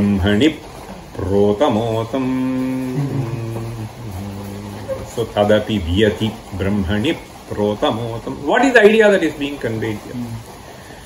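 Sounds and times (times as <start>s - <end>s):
man humming low: 2.1s - 5.2s.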